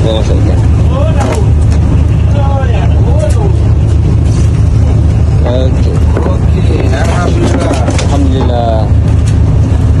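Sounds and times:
boat engine low rumble: 0:00.0 - 0:10.0.

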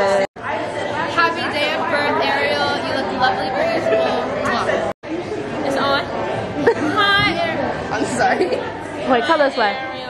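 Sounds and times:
people chattering indoors: 0:00.0 - 0:10.0.

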